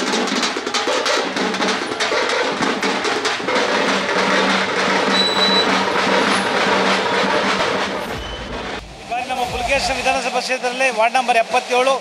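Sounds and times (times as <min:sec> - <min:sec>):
many small engines running: 0:00.0 - 0:08.8
drumming: 0:00.0 - 0:10.6.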